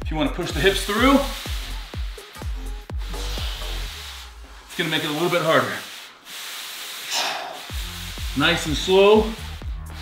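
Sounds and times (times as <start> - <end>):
background music with bass beats: 0.0 - 5.8, 6.6 - 10.0
paper plates sliding on carpet: 0.5 - 10.0.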